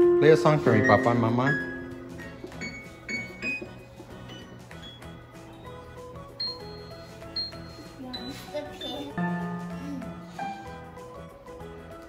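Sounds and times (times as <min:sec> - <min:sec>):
digital piano notes: 0:00.0 - 0:11.4.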